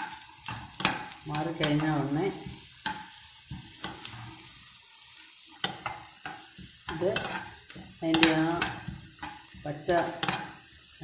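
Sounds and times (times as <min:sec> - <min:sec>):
onions sizzling in oil: 0:00.0 - 0:11.0
spatula scraping a pan: 0:00.0 - 0:11.0.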